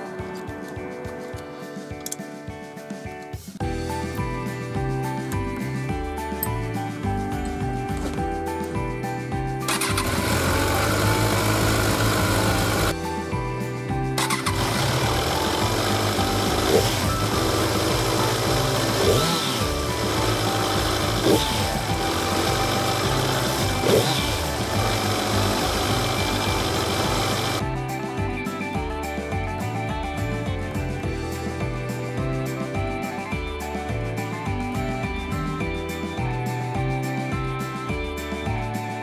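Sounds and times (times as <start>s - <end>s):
background music: 0.0s - 39.0s
motorcycle engine running: 9.6s - 13.2s, 14.1s - 27.7s.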